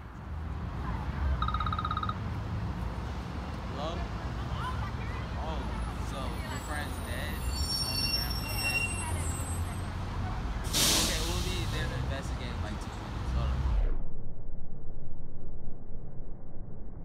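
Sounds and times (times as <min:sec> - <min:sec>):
loud hiss: 0:10.7 - 0:12.1
low rumble: 0:13.4 - 0:17.0.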